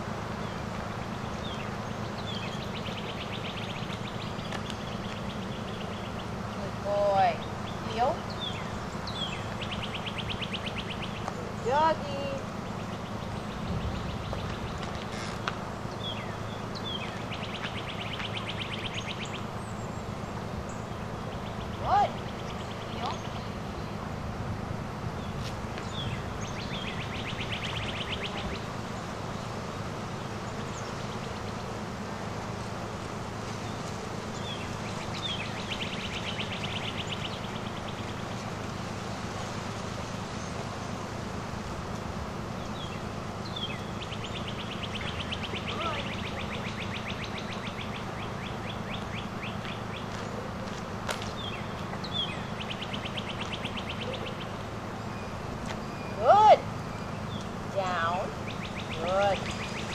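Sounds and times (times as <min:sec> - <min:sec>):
low outdoor rumble: 0:00.0 - 0:59.9
steady low hum: 0:00.0 - 0:59.9
bird chirps: 0:00.4 - 0:24.0, 0:25.2 - 0:29.6, 0:33.6 - 0:38.5, 0:42.5 - 0:57.6, 0:58.2 - 0:59.9
songbird trilling: 0:00.4 - 0:24.0, 0:25.2 - 0:29.5, 0:33.6 - 0:38.5, 0:42.5 - 0:50.6, 0:51.2 - 0:59.9
bird trilling: 0:07.3 - 0:12.0, 0:42.6 - 0:50.2, 0:51.3 - 0:59.9.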